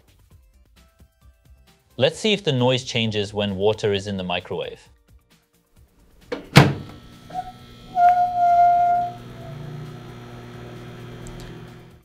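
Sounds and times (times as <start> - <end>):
microwave door shutting: 6.3 - 11.9
microwave oven humming: 6.3 - 12.0
steady electronic tone: 6.8 - 12.0.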